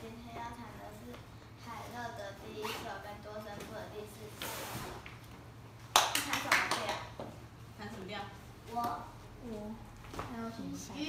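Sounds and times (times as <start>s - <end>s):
sharp hand claps: 5.9s - 7.2s.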